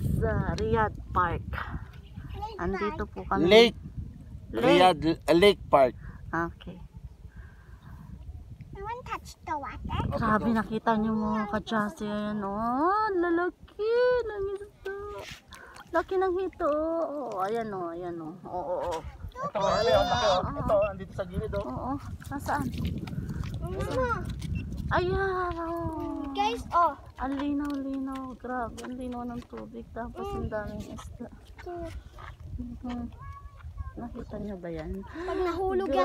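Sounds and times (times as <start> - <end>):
wind buffeting microphone: 0.0 - 36.0
child's voice: 2.2 - 3.1, 8.7 - 10.4, 11.1 - 11.7, 19.3 - 20.3, 23.6 - 24.4, 25.0 - 27.4, 30.1 - 31.0, 32.9 - 34.2, 35.2 - 36.0.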